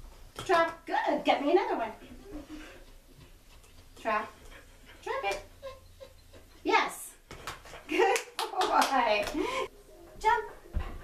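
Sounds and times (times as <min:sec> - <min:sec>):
woman talking to a dog: 0:00.4 - 0:02.0, 0:04.0 - 0:04.4, 0:05.0 - 0:05.5, 0:10.2 - 0:10.6
hand claps: 0:07.3 - 0:09.5.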